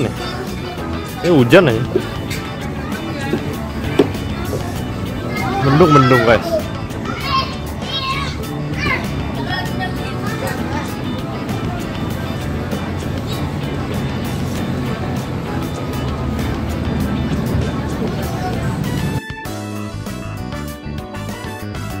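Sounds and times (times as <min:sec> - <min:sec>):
voices including children: 0:00.0 - 0:15.9
background music with low notes: 0:00.0 - 0:22.0.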